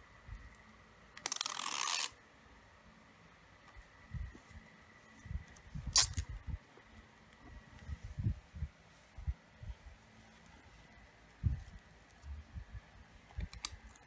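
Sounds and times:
tape tearing off roll: 5.9s - 6.2s.

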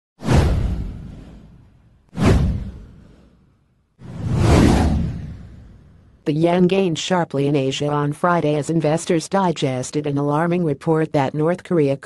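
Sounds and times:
whoosh sound effect: 2.2s - 6.1s.

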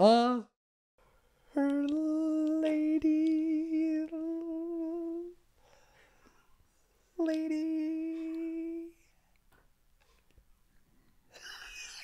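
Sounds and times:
man humming a note: 1.6s - 5.4s, 7.2s - 9.0s.

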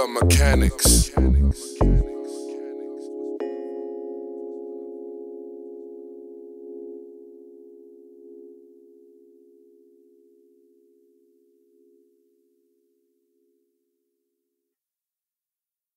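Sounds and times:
held synthesizer chord: 0.0s - 13.6s.

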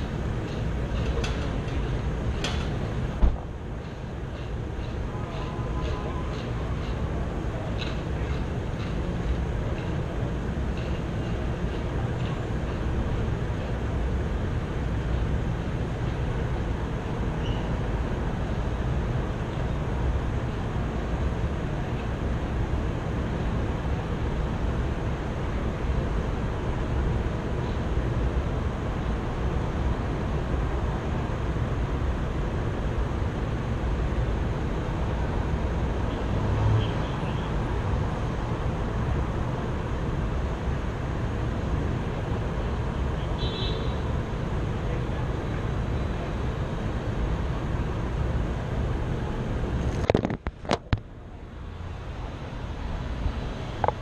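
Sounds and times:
low rumble of vehicle noise: 0.0s - 54.0s.

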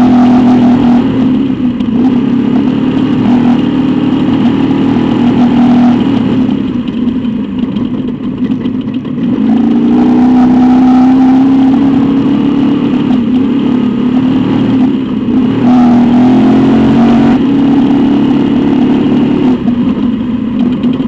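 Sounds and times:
race truck engine: 0.0s - 21.0s
road and chassis noise: 0.0s - 21.0s.

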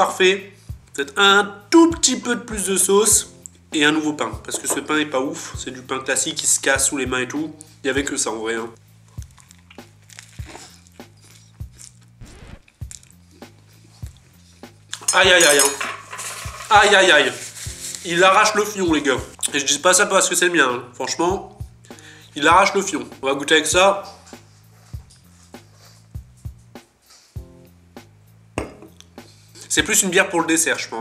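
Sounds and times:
faint background music: 0.0s - 31.0s
person biting and chewing: 9.1s - 14.2s.

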